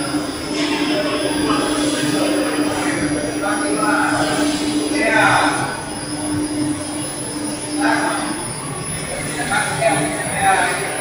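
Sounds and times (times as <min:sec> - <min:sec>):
industrial machine hum: 0:00.0 - 0:11.0.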